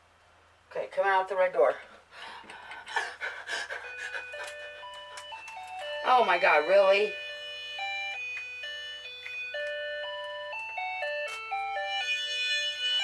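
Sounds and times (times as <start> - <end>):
tinny electronic toy jingle: 3.8 - 13.0.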